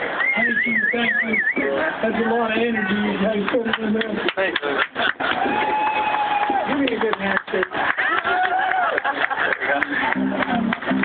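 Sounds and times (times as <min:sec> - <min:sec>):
voices: 0:00.0 - 0:05.8.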